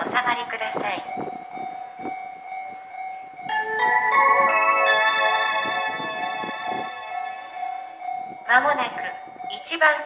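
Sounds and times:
electronic chime melody over speakers: 1.1s - 9.7s.

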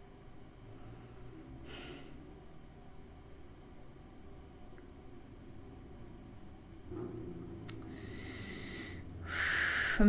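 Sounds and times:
woman breathing in: 7.9s - 10.0s.

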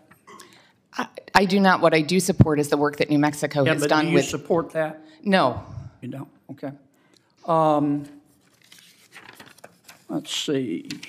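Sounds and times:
paper rustling: 8.2s - 11.0s.

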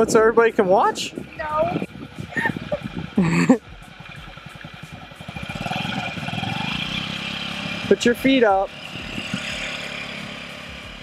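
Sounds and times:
scooter engine putter: 2.5s - 11.0s.

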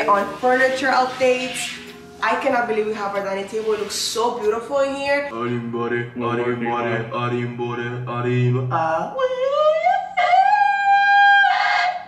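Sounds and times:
man singing a high note: 5.3s - 9.0s.

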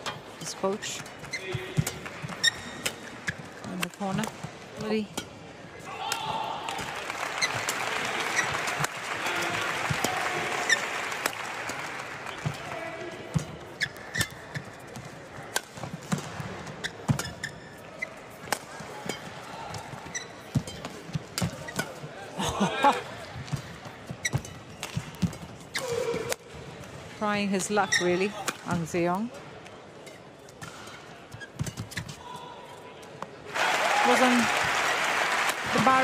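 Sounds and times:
shoes squeaking on court floor: 0.0s - 5.3s, 6.2s - 22.2s, 22.9s - 33.4s.

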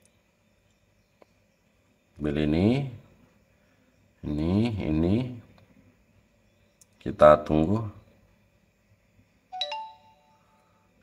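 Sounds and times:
electronic notification chime: 9.6s - 10.4s.

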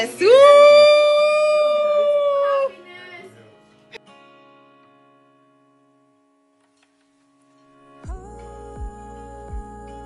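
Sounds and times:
background guitar music: 0.0s - 10.0s
person whooping: 0.2s - 2.7s.

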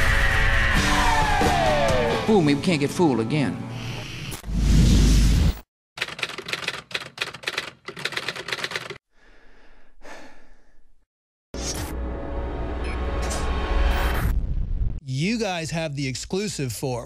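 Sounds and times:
rapid typewriter-like clicking: 6.0s - 9.0s.

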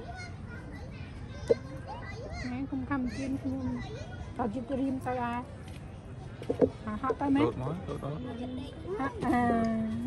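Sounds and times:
outdoor ambience: 0.0s - 10.0s
people and children talking: 0.0s - 10.0s.

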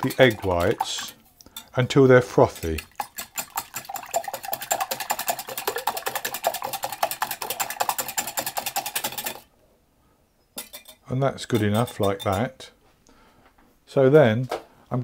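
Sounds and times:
whisk beating in glass bowl: 0.0s - 9.4s, 11.5s - 12.5s.

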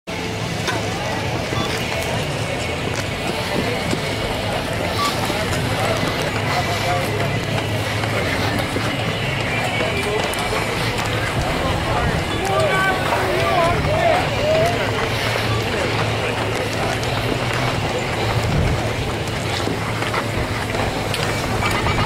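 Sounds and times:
indistinct chatter: 0.1s - 22.0s.

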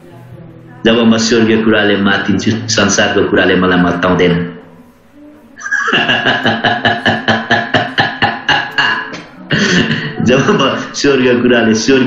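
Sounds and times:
man laughing: 5.6s - 10.7s.

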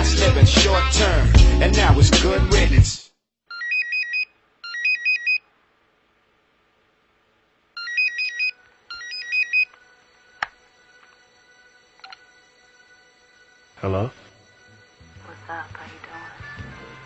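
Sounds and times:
electronic phone ringtone: 3.5s - 5.4s, 7.8s - 15.6s.

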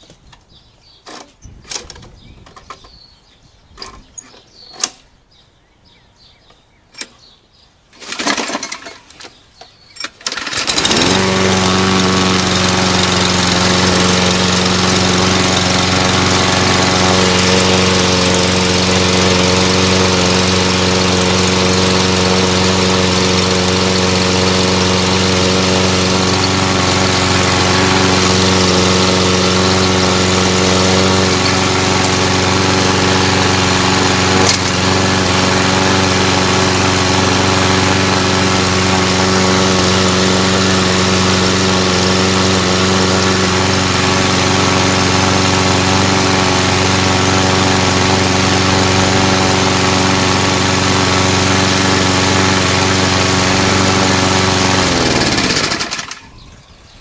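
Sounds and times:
lawn mower engine starting and running: 0.0s - 5.3s, 6.2s - 57.0s.

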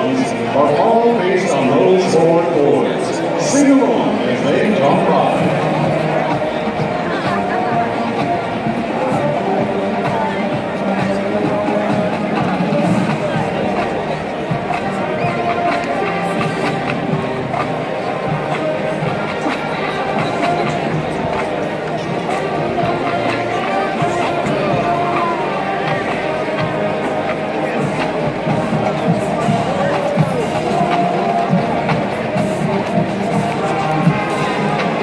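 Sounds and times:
crowd noise: 0.0s - 35.0s
marching band playing: 0.0s - 35.0s.

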